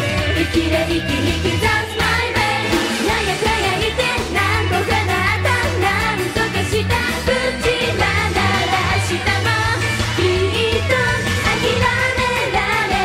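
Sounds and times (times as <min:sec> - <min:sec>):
band backing with bass line: 0:00.0 - 0:13.0
women singing pop song: 0:00.0 - 0:13.0.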